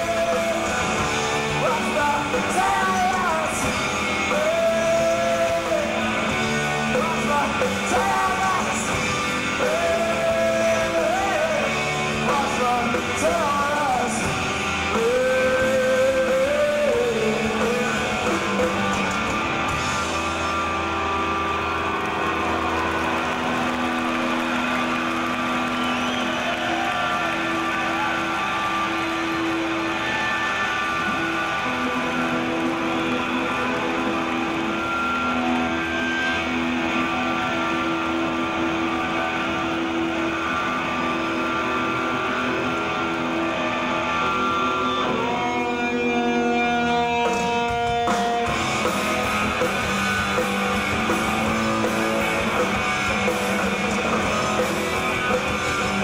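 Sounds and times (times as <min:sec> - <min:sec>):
band strumming loudly: 0:00.0 - 0:56.0
bass guitar: 0:00.0 - 0:56.0
electric guitars: 0:00.0 - 0:56.0.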